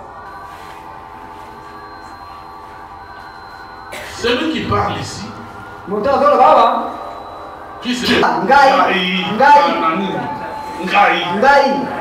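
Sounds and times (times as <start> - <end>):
drone of held tones: 0.0 - 12.0.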